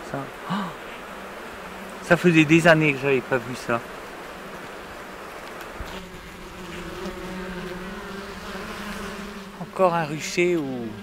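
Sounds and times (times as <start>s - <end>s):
honeybees buzzing: 0.0s - 11.0s
bee humming close by: 0.7s - 11.0s.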